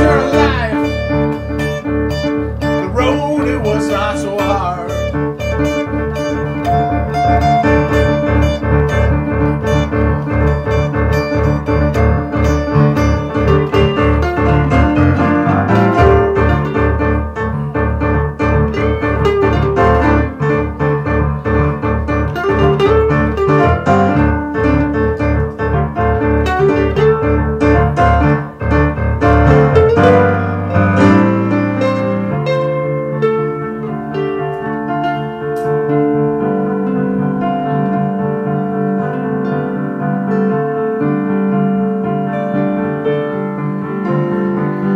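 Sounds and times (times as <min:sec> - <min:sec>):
electric guitar: 0:00.0 - 0:44.9
keyboard and bass: 0:00.0 - 0:44.9.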